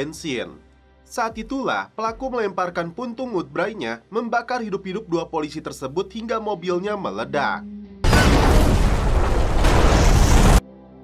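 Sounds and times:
loud explosion blast: 8.0s - 10.6s.

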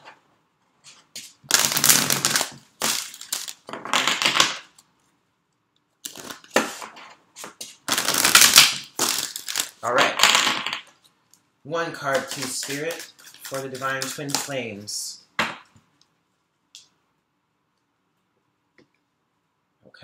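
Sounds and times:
cards being shuffled: 6.0s - 10.6s, 12.0s - 14.6s.

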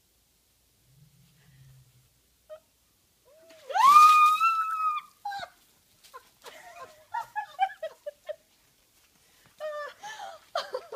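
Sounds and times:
woman screaming: 3.5s - 5.6s.

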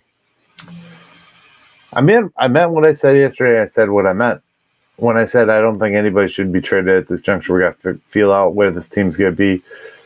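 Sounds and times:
man's soft breathy hum: 9.7s - 10.0s.

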